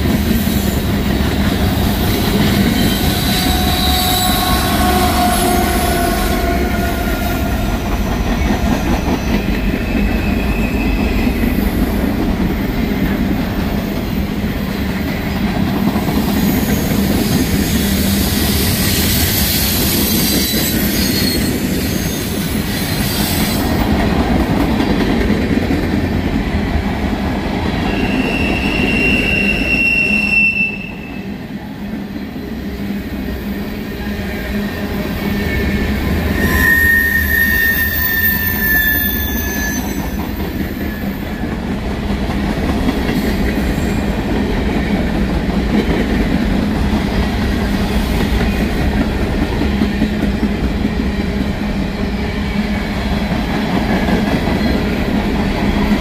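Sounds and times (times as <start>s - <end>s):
wheels squealing: 36.3s - 40.9s.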